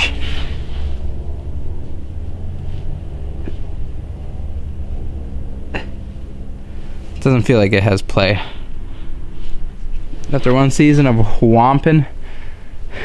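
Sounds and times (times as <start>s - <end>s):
low machine hum: 0.0s - 13.0s.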